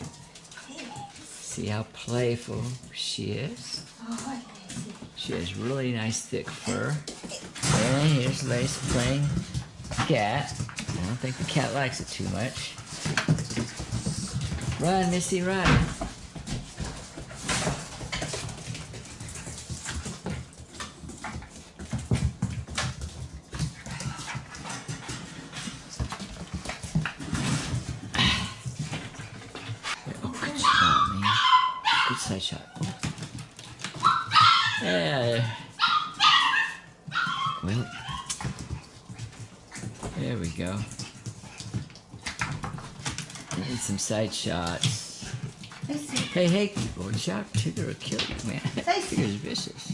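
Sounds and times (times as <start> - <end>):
scuffling and scratching on floor: 3.8 - 30.9
puppy whimpering and yipping: 30.5 - 33.0, 34.0 - 38.4
claws clicking on hard floor: 32.7 - 34.8, 35.8 - 44.0.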